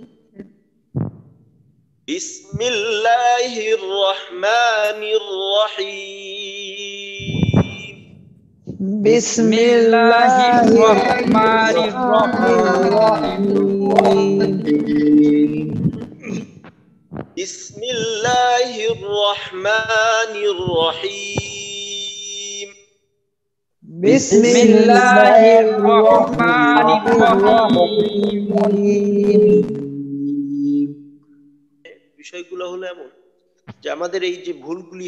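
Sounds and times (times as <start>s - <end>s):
man reciting: 2.1s - 8.1s, 8.7s - 16.5s, 17.2s - 22.8s, 23.8s - 31.1s, 31.9s - 33.2s, 33.8s - 35.0s.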